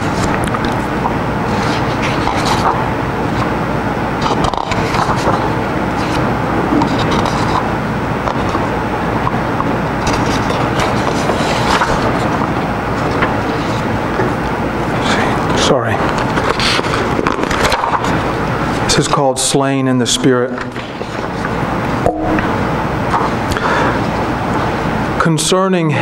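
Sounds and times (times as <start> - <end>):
paper sheets rustling: 0.0 - 3.5, 4.2 - 7.7, 10.0 - 19.1, 20.6 - 21.6
steady rushing background noise: 0.0 - 25.2
low hum: 21.5 - 23.5.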